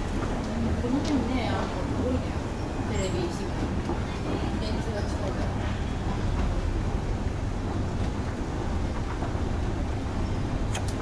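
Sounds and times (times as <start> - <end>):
escalator rumble and hiss: 0.0 - 11.0
faint clicks: 10.7 - 11.0.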